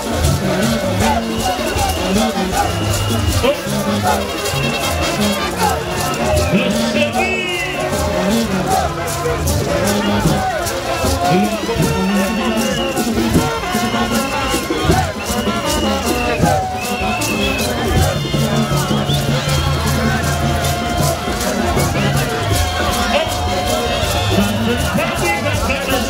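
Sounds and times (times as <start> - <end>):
band percussion beat: 0.0 - 26.0
crowd voices: 0.0 - 26.0.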